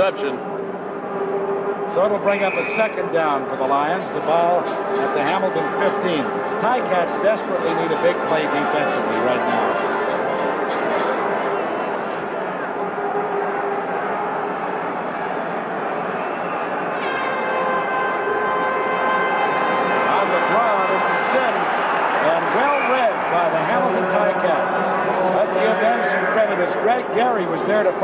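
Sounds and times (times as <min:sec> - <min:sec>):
stadium crowd noise: 0:00.0 - 0:28.0
people shouting and yelling: 0:20.0 - 0:28.0.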